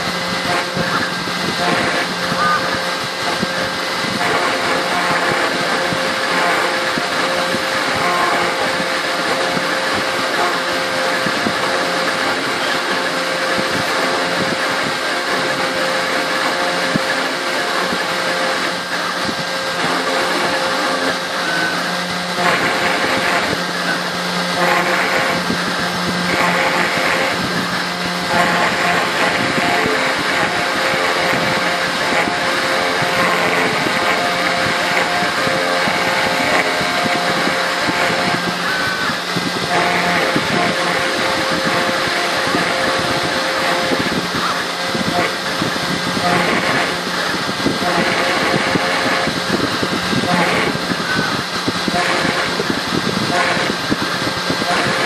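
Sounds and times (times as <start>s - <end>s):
router spindle whine: 0.0s - 55.0s
scratchy metal cutting noise: 0.0s - 55.0s.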